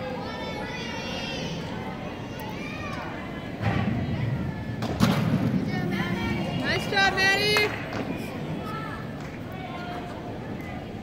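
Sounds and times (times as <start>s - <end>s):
murmur of voices: 0.0s - 11.0s.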